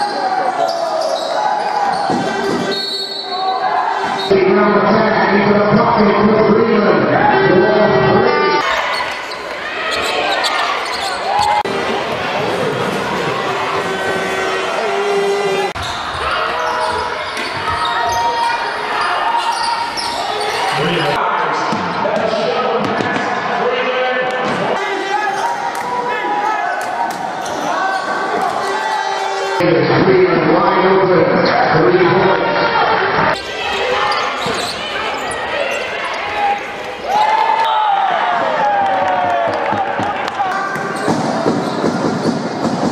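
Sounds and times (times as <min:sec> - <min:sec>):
voices echoing in sports hall: 0:00.0 - 0:42.9.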